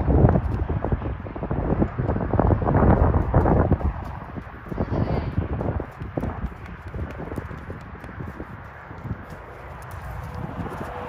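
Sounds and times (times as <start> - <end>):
horse hoofbeats on sand: 0.0 - 11.0.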